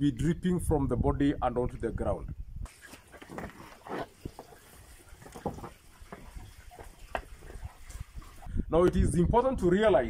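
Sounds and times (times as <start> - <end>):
cows stepping in mud: 2.7 - 8.5.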